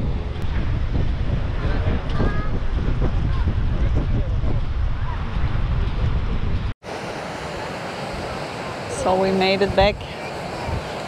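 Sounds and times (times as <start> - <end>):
wind rumbling on microphone: 0.0 - 6.8, 7.4 - 11.0
surf washing on sandy beach: 6.8 - 11.0.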